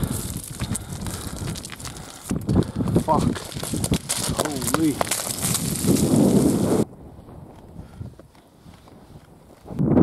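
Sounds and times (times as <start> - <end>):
footsteps crunching on scree: 0.0 - 6.8
wind buffeting microphone: 0.0 - 10.0.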